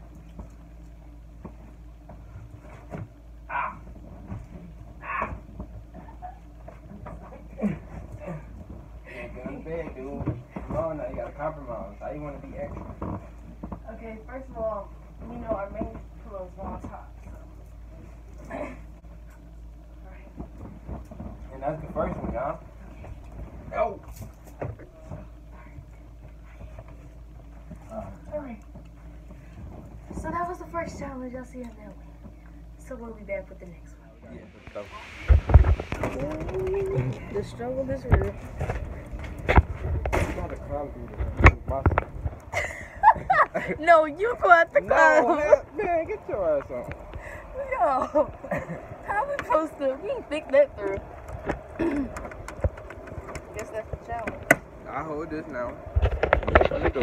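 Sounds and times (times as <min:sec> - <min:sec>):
steady low hum: 0:00.0 - 0:57.0
low unclear voices: 0:34.3 - 0:42.0.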